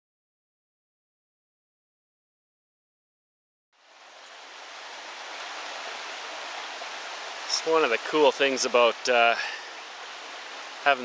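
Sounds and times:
water running over rocks: 3.8s - 11.0s.

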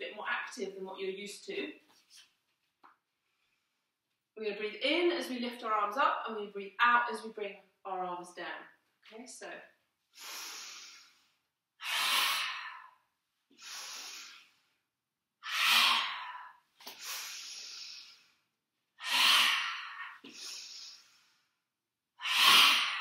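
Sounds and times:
woman breathing in: 10.1s - 14.8s, 15.4s - 18.4s, 19.0s - 21.6s
woman forcefully breathing out: 15.4s - 18.3s, 19.0s - 21.2s, 22.2s - 23.0s.

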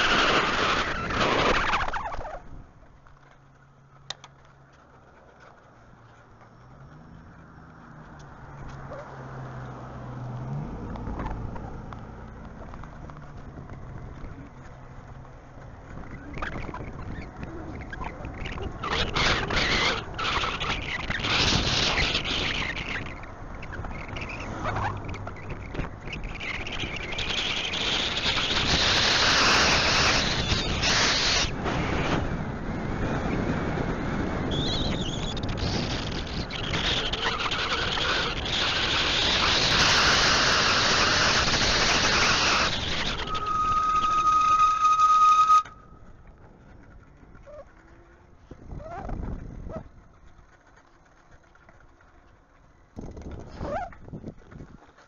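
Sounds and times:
wind buffeting microphone: 10.4s - 44.8s, 45.8s - 50.6s, 52.8s - 55.0s.

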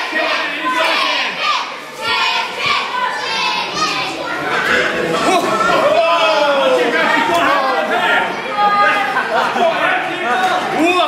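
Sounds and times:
crowd shouting: 0.0s - 11.0s.

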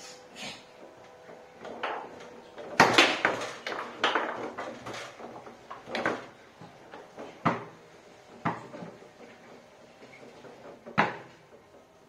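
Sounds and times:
foosball rods clacking: 1.0s - 12.0s
foosball ball knocking on table: 1.6s - 6.4s, 7.0s - 9.0s, 10.6s - 11.6s.

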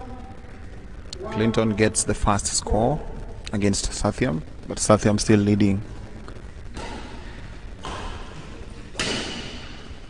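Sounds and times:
hall room noise hiss: 0.0s - 10.0s.

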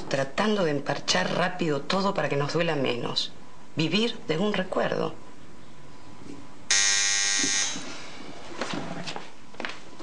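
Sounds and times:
electric door buzzer: 6.7s - 7.9s.

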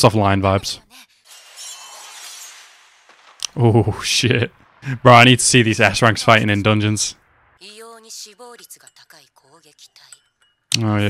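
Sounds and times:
hissing swell with high shimmer: 1.2s - 7.2s.

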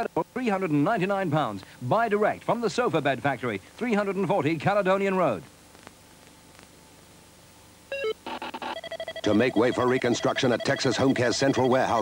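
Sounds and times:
faint hiss: 0.0s - 7.9s.

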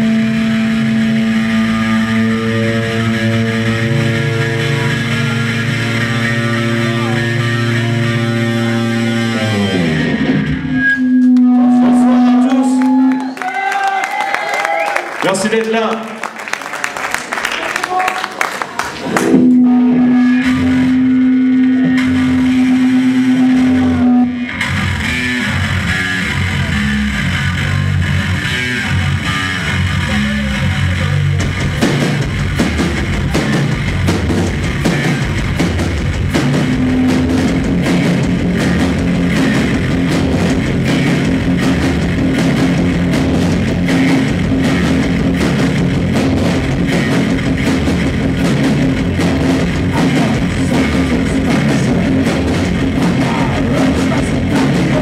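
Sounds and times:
long held guitar note: 0.0s - 13.2s, 19.1s - 25.0s, 36.4s - 42.8s
noise rock band playing: 0.0s - 13.4s, 18.8s - 55.0s.

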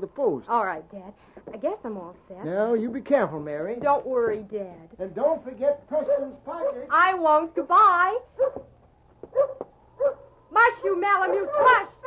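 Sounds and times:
sled dogs barking: 5.9s - 7.0s, 8.3s - 8.7s, 9.3s - 12.0s.

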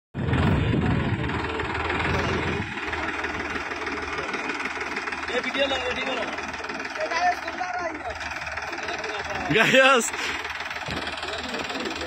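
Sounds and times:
tractor diesel engine under load: 0.1s - 12.0s.

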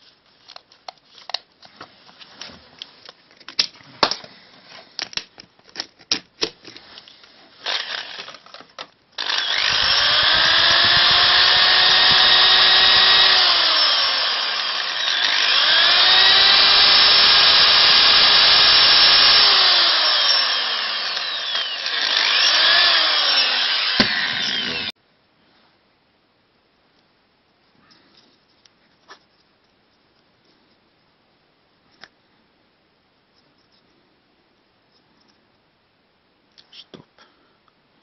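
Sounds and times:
electric drill drilling into wood: 7.6s - 8.4s, 9.2s - 24.9s.

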